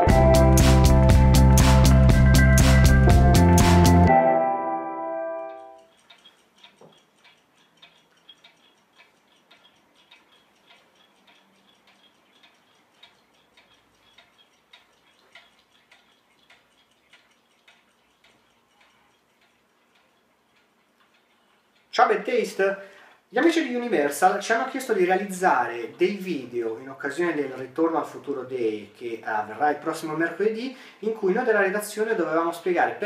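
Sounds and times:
mechanical clocks ticking: 0:00.0 - 0:03.7, 0:05.5 - 0:33.0.

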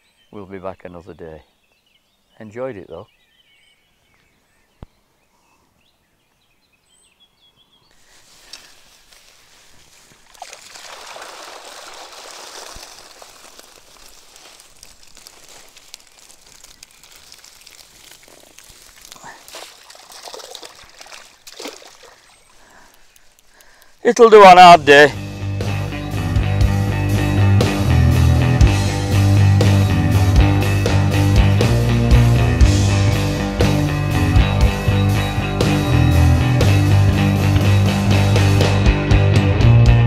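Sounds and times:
water splashes: 0:09.2 - 0:23.0
water pouring out of a net: 0:09.7 - 0:22.7.

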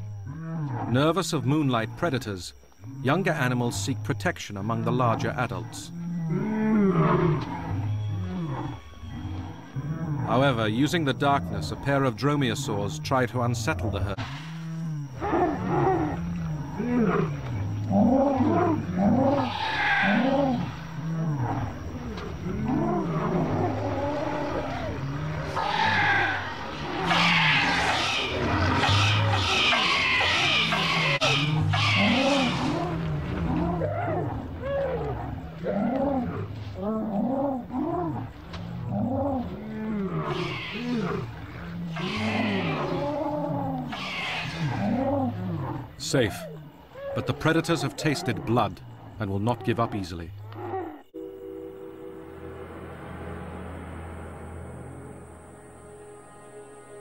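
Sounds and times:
dinosaur bellows and grunts: 0:00.2 - 0:51.1
high shrieks: 0:18.4 - 0:35.0, 0:40.1 - 0:43.1, 0:43.8 - 0:45.0.

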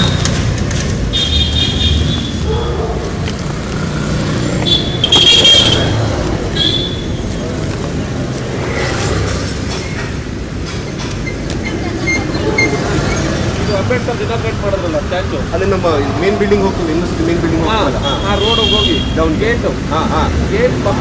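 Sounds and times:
street traffic noise: 0:00.0 - 0:21.0
vehicle horns honking: 0:01.1 - 0:02.4, 0:04.6 - 0:07.2, 0:17.9 - 0:19.2.

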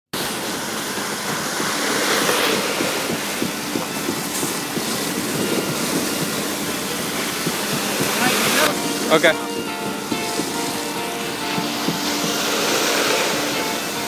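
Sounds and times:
concrete pump running: 0:00.2 - 0:14.0
small irregular thuds: 0:01.0 - 0:13.7.

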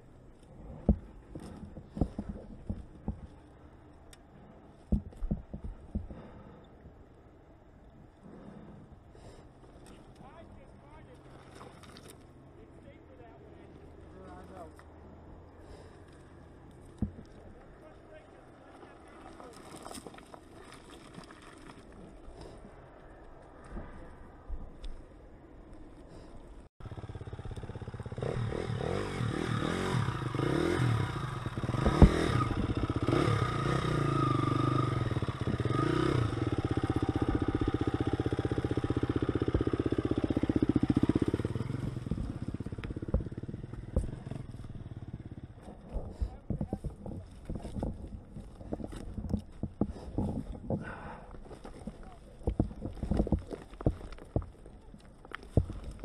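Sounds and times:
stones crunching under tyres: 0:15.6 - 0:26.3, 0:31.4 - 0:33.1, 0:35.0 - 0:56.0
dirt bike engine revving: 0:26.8 - 0:45.6.

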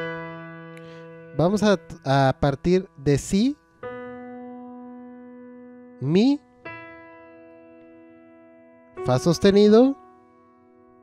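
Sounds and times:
piano notes ringing: 0:00.0 - 0:11.0.

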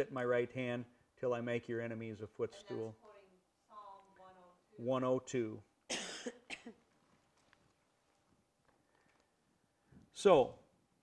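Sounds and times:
person coughing: 0:05.9 - 0:06.8.

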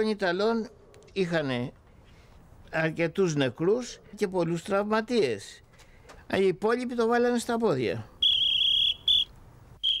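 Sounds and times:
cricket chirping trill: 0:08.2 - 0:10.0.

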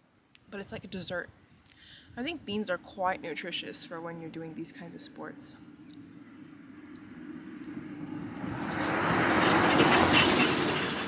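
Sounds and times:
minibus driving by: 0:05.6 - 0:11.0.

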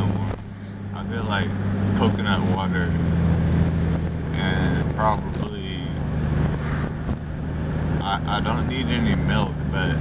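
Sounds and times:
car engine and road drone: 0:00.0 - 0:10.0.

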